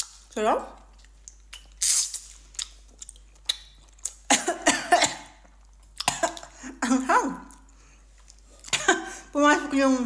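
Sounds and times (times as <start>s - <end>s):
woman coughing: 4.3s - 5.4s, 6.1s - 7.0s, 8.7s - 9.3s.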